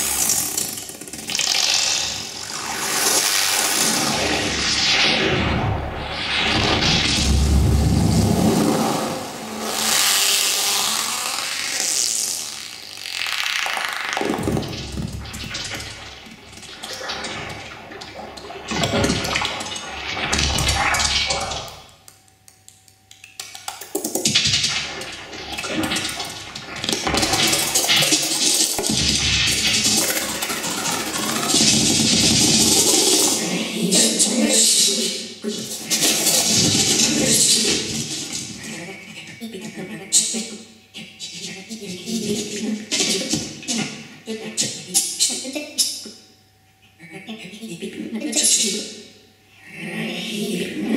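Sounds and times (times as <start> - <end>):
synthesizer noise textures: 0.0 - 22.1, 23.4 - 44.2
low rumble: 5.5 - 10.2.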